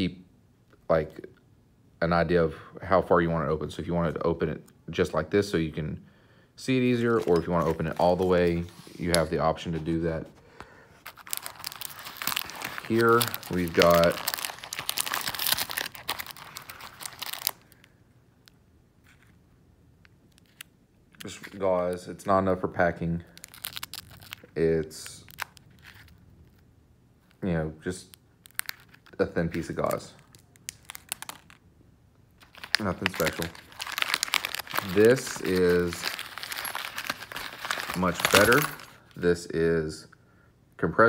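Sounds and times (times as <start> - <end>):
plastic wrapping crinkling: 6.9 - 19.4, 20.2 - 22.0, 23.2 - 27.4, 28.0 - 31.7, 32.4 - 39.2.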